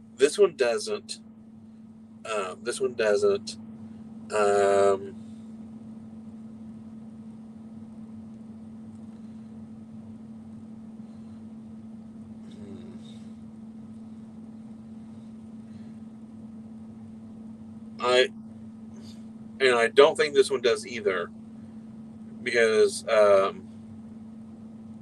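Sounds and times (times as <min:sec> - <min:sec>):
constant tone: 0:00.0 - 0:25.0
low room hum: 0:00.0 - 0:25.0.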